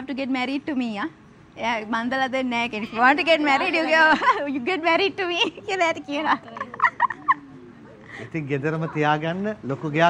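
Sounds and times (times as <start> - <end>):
woman giggling: 5.4 - 7.6.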